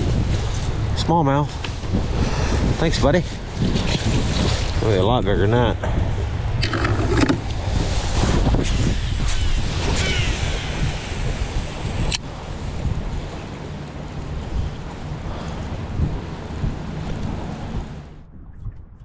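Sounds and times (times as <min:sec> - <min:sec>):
gusty wind buffeting microphone: 0:00.0 - 0:19.0.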